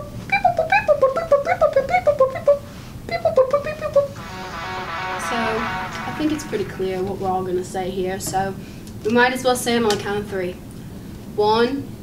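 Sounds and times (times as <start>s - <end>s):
background music: 4.2s - 7.4s.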